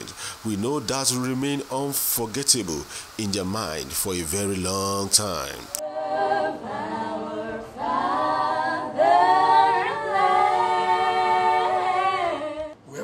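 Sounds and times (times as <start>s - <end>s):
young voices singing a cappella: 5.7s - 13.0s.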